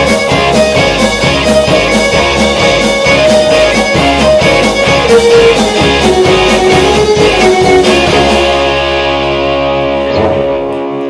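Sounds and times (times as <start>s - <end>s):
drum hits: 0.0s - 9.0s
live rock band playing: 0.0s - 11.0s.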